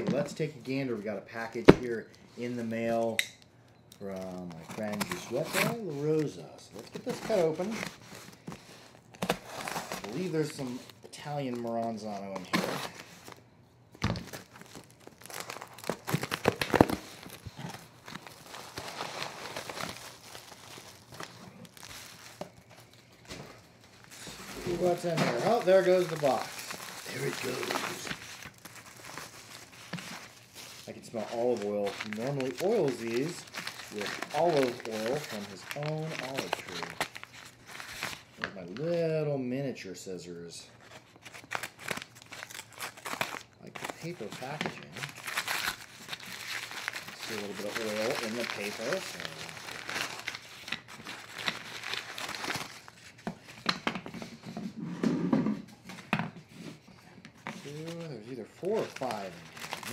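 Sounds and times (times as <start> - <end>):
plastic wrap crinkling and tearing: 3.9 - 13.4, 14.0 - 38.9, 40.8 - 54.2, 57.4 - 59.9
paper and plastic bag rustling: 4.0 - 13.4, 14.0 - 38.5, 40.8 - 54.8, 55.8 - 59.9.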